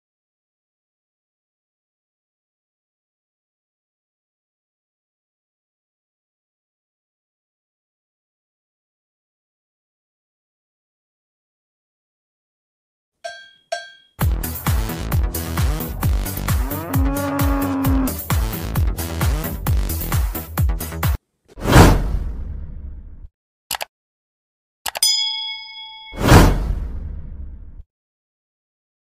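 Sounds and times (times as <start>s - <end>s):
cowbell strokes: 13.2s - 14.3s, 25.0s - 26.4s
bright bell ding: 13.3s - 14.2s, 25.0s - 26.5s
whoosh with low rumble: 21.6s - 23.3s, 26.2s - 27.8s.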